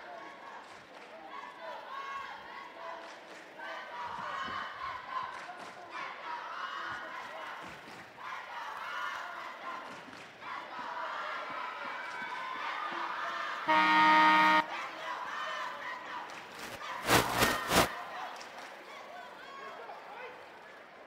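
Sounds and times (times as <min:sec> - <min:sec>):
crowd chatter: 0:00.0 - 0:21.0
scoreboard horn: 0:13.7 - 0:14.8, 0:17.0 - 0:17.9
loud burst of crowd noise: 0:16.2 - 0:18.4.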